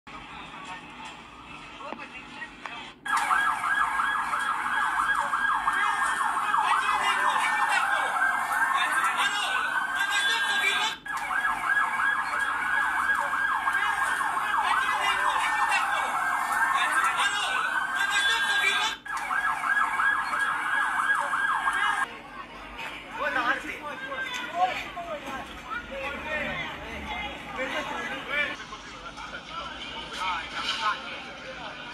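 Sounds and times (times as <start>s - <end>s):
emergency vehicle siren: 3.1s - 22.1s.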